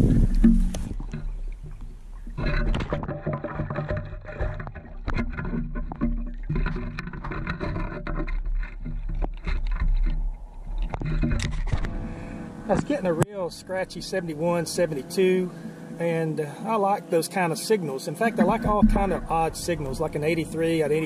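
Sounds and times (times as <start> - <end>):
water sloshing: 0.0 - 16.2, 18.1 - 21.0
gravel rattling in a scoop: 18.3 - 21.0.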